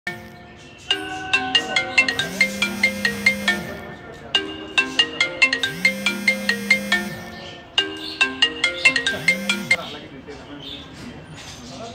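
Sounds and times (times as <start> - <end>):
marimba-like phone ringtone: 0.1 - 9.9.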